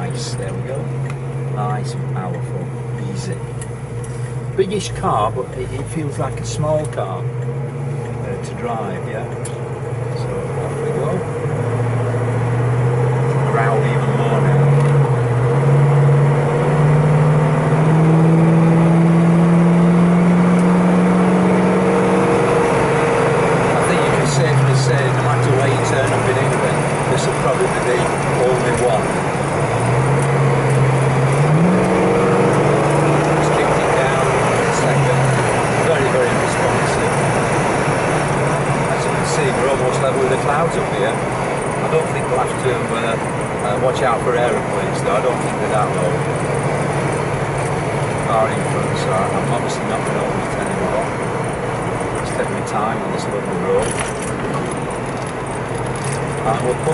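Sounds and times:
car engine revving: 0.0s - 56.9s
road and tyre noise: 0.0s - 56.9s.

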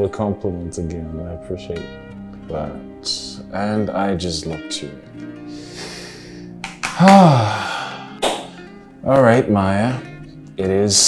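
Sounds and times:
soft guitar music: 0.0s - 11.0s
short breath: 5.5s - 6.5s, 7.2s - 8.2s
man sighing: 5.6s - 8.2s.

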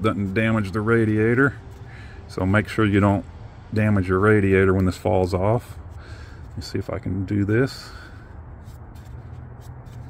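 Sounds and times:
fan clutch rubbing and scraping: 0.0s - 3.2s, 3.8s - 10.0s.

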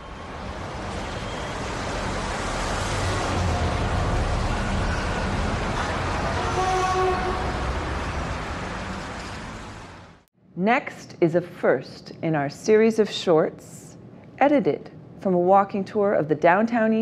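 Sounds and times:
traffic rumble: 0.0s - 10.3s.

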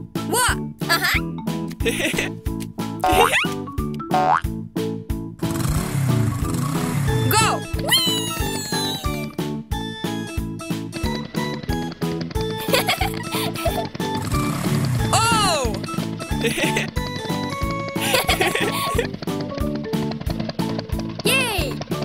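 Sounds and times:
upbeat cartoon music: 0.0s - 22.0s
springy cartoon sound effects: 3.0s - 3.6s.

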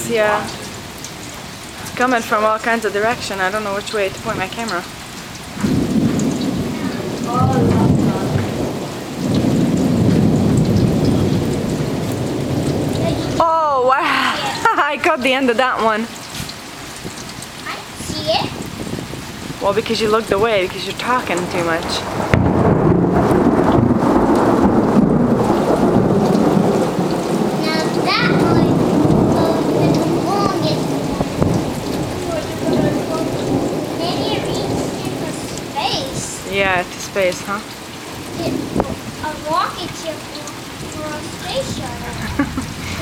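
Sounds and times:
rain hiss: 0.0s - 43.0s
thunder rumbling: 0.0s - 43.0s.

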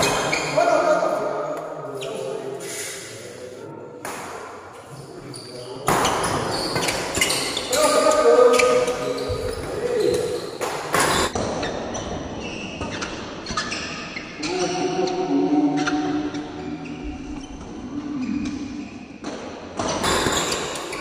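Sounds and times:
voices in hall: 0.0s - 19.2s
shoes squeaking on court floor: 1.9s - 3.1s, 4.9s - 14.8s.

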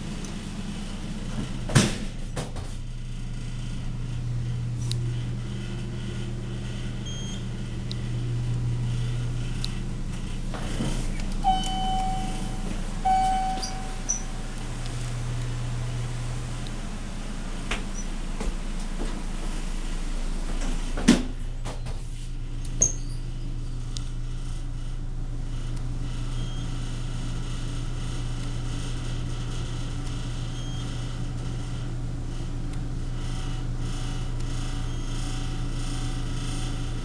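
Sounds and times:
elevator low hum: 0.0s - 37.0s
elevator electronic signal tones: 7.0s - 7.6s, 11.4s - 16.0s, 30.5s - 31.1s.

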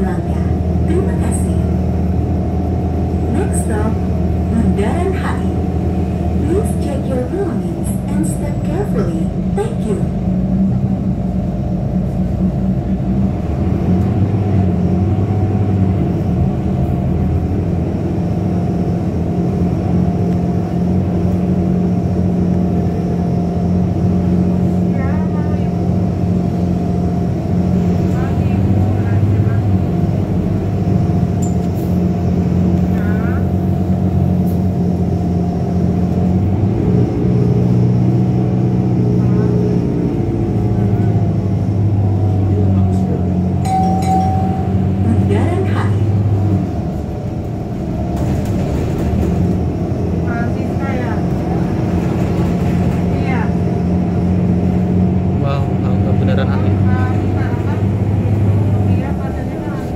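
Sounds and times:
bus engine drone: 0.0s - 59.9s.

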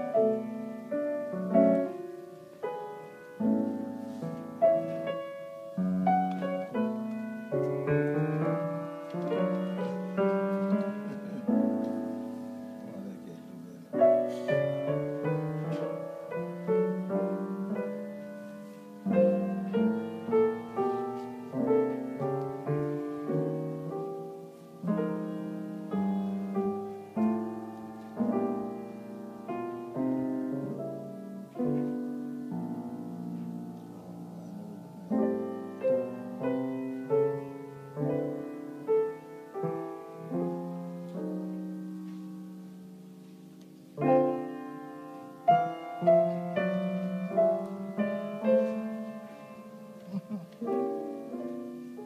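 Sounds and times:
solo jazz piano chords: 0.0s - 52.0s.

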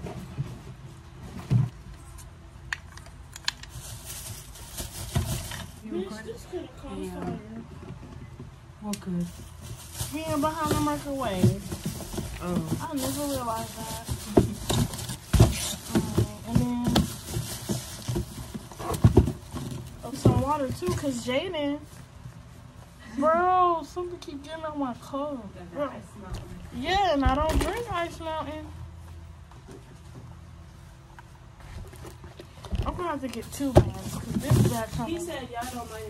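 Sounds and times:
plastic bag rustling and crinkling: 3.0s - 6.3s, 9.1s - 22.7s, 31.6s - 36.0s.

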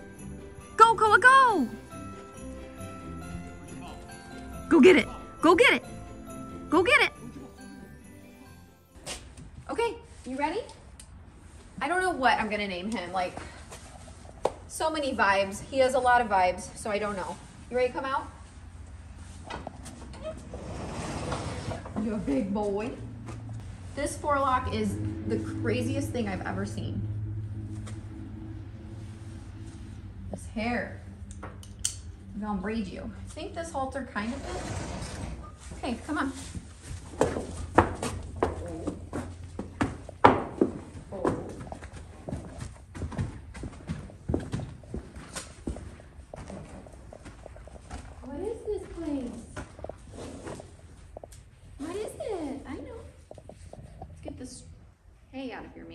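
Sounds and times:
horse hooves on concrete: 10.5s - 29.9s, 32.4s - 54.2s
sliding door rolling on track: 20.3s - 22.1s, 34.2s - 35.6s.

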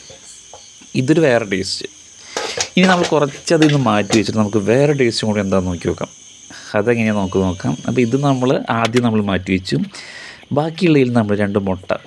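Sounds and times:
faint high-pitched tone: 0.0s - 9.8s
person speaking: 1.0s - 12.0s.

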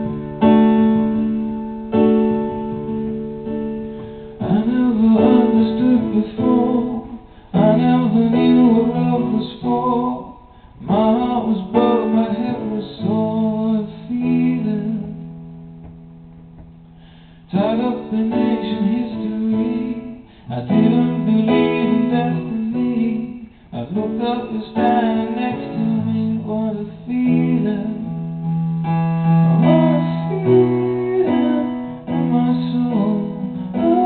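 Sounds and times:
piano playing sustained chords: 0.0s - 16.9s, 17.6s - 34.0s
man singing: 4.4s - 15.3s, 17.5s - 34.0s.

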